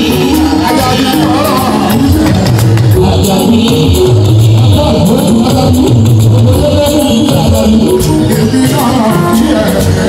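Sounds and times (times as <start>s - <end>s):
loud live band music: 0.0s - 10.0s
man singing into microphone: 0.0s - 10.0s.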